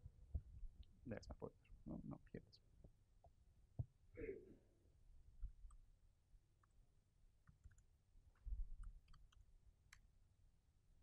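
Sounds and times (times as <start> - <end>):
laptop keyboard typing: 7.4 - 7.9, 8.8 - 10.1.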